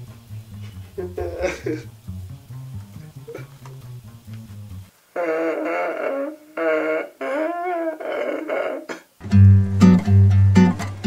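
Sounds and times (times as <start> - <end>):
man crying in wailing sobs: 1.0 - 1.9.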